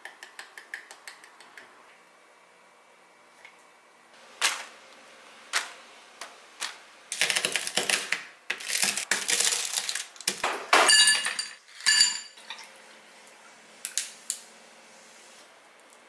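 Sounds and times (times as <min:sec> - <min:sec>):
toffee cracking and crunching: 0:07.1 - 0:10.4.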